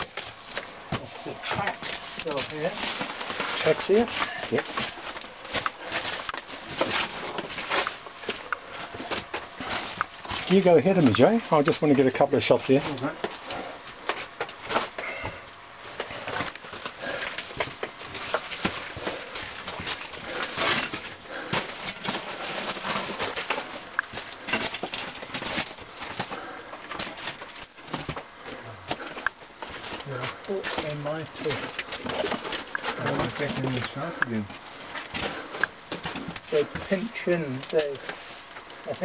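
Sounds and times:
gear rustling: 0:00.0 - 0:39.0.

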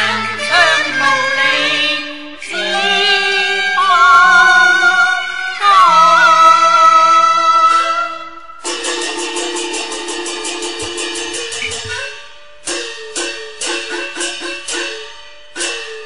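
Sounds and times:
plucked string instrument tremolo: 0:07.6 - 0:16.0.

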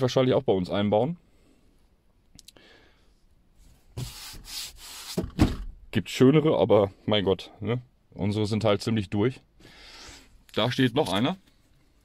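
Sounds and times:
rubbing brushing noise: 0:03.6 - 0:05.3.

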